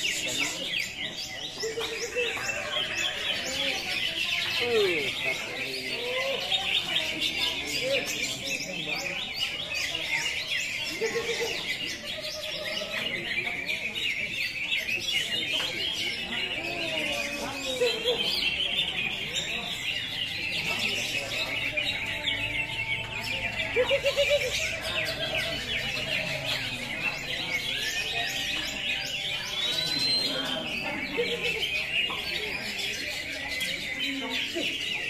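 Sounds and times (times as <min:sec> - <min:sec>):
birds chirping and trilling: 0:00.0 - 0:35.0.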